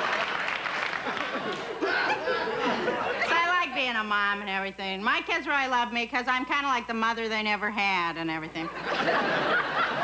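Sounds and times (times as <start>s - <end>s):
audience applauding: 0.0s - 1.9s
studio audience laughing: 0.8s - 3.8s, 8.6s - 10.0s
woman speaking: 3.2s - 8.8s.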